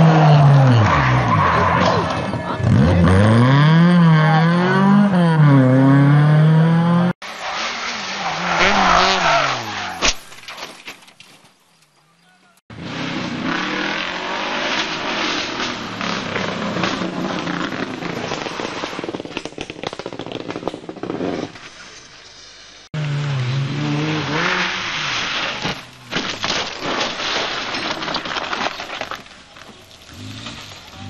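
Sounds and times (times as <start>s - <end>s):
rally car engines revving: 0.0s - 9.9s, 12.7s - 19.0s, 23.0s - 26.1s, 29.9s - 31.0s
road and tyre noise: 0.0s - 31.0s.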